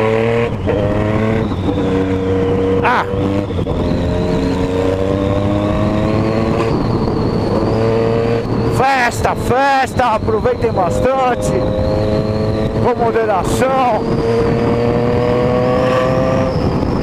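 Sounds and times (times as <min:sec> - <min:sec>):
motorcycle engine running: 0:00.0 - 0:17.0
wind rush on microphone: 0:00.0 - 0:17.0.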